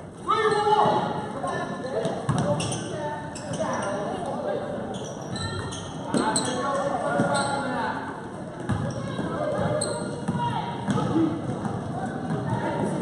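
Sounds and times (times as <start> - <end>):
voices in gymnasium: 0.0 - 13.0
basketball bouncing on gym floor: 8.6 - 13.0.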